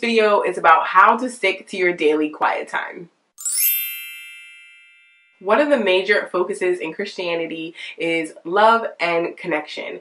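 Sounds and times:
bright chime: 3.4 - 5.4.

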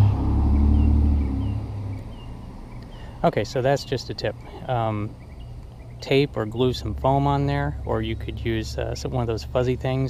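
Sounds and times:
pickup truck driving past: 0.0 - 2.3.

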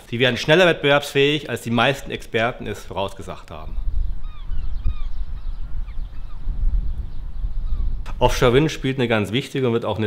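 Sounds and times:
low rumbling wind: 0.0 - 9.5
honking bird calls: 4.2 - 6.5, 7.6 - 8.2.

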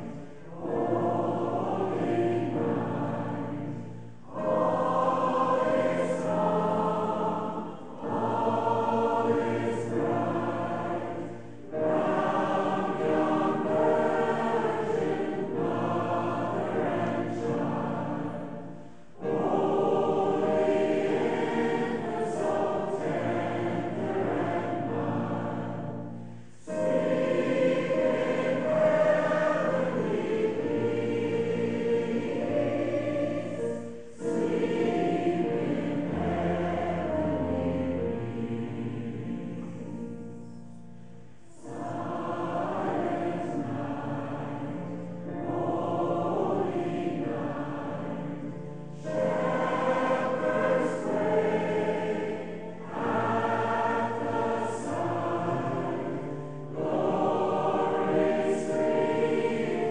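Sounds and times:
mixed choir singing: 0.0 - 59.9.

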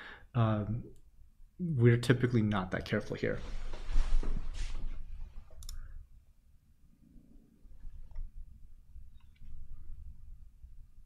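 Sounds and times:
soft handling noise: 3.2 - 5.6.

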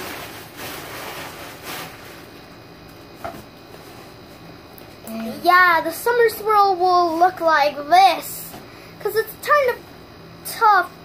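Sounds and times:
faint room tone hiss: 0.0 - 11.0.

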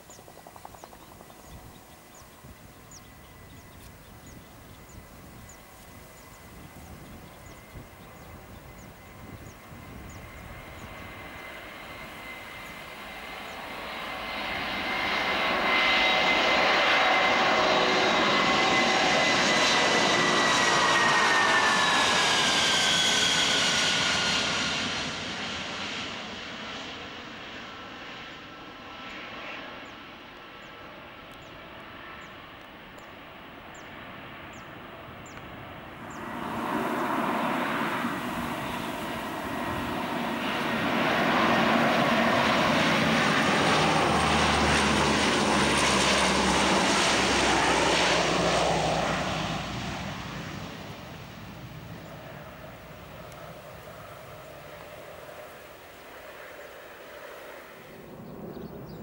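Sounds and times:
jet aircraft roaring low pass: 0.0 - 59.0
turboprop aircraft low pass: 0.0 - 59.0.

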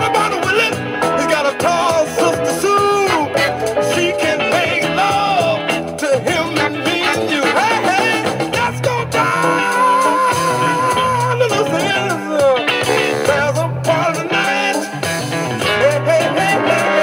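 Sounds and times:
bass line: 0.0 - 17.0
drums: 0.0 - 17.0
jazz-funk music: 0.0 - 17.0
lead melody line: 0.0 - 17.0.

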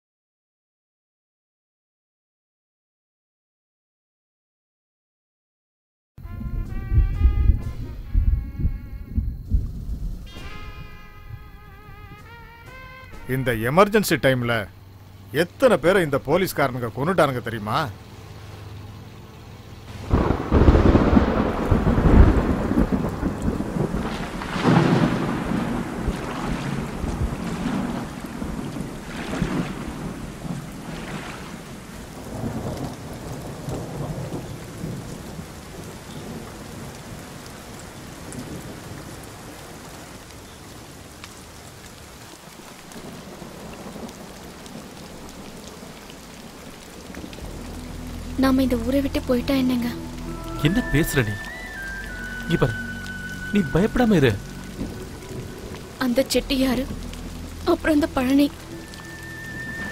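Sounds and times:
thunder rumbling: 6.2 - 12.4, 19.9 - 40.2, 42.9 - 59.9
steady rain: 6.2 - 59.9.

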